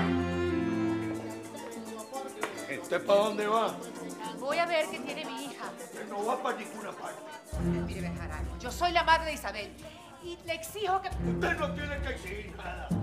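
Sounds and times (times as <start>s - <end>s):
deep musical layer: 0.0s - 4.1s, 7.6s - 9.7s, 11.1s - 13.0s
background music: 0.0s - 13.0s
people talking: 1.1s - 13.0s.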